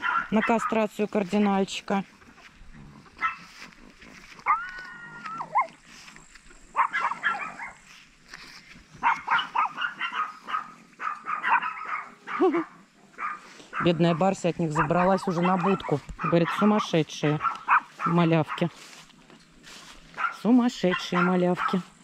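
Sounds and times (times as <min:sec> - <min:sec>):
small dogs yipping: 0:00.0 - 0:00.8, 0:03.0 - 0:05.9, 0:06.7 - 0:07.8, 0:09.0 - 0:18.8, 0:20.0 - 0:21.9
dogs whining: 0:04.4 - 0:05.8.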